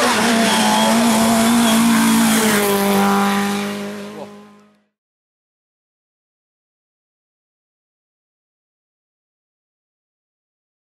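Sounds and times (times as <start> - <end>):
car engine at high revs: 0.0 - 4.9.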